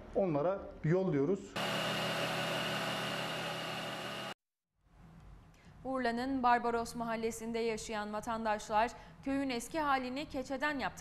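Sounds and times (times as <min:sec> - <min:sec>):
bench lathe running: 0:01.6 - 0:04.4.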